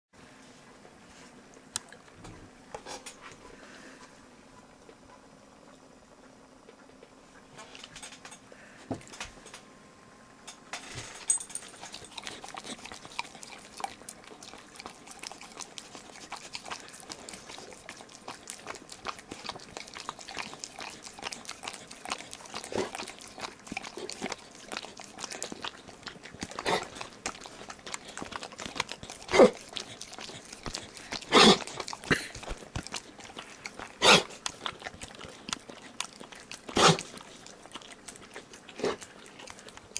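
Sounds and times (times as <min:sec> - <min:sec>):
dog licking and smacking mouth: 0:11.6 - 0:39.9.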